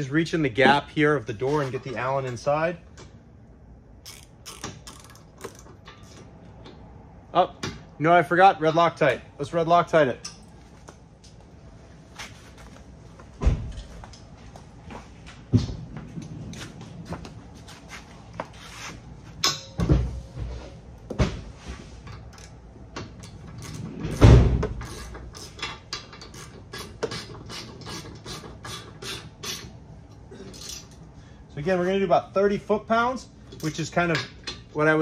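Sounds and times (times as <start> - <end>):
hand tool and metal parts clicking: 24.7 - 31.0.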